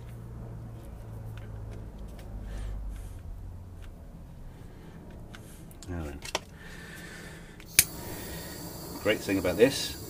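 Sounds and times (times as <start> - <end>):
sharp click: 7.6 - 8.0.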